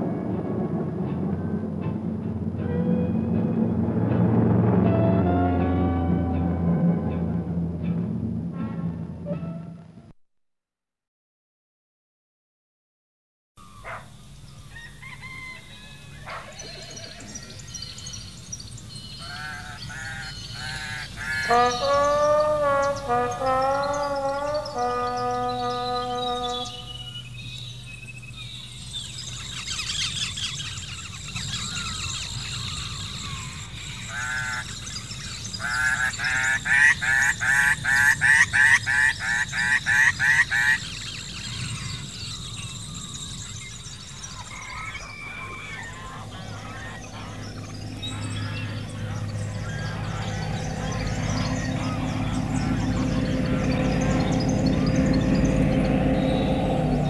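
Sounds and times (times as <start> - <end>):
music: 0.0 - 10.2, 20.6 - 27.9
long drawn-out bird call: 14.6 - 27.8, 28.4 - 57.0
geese honking: 19.2 - 27.2, 34.0 - 34.8, 35.6 - 41.8, 44.3 - 56.9.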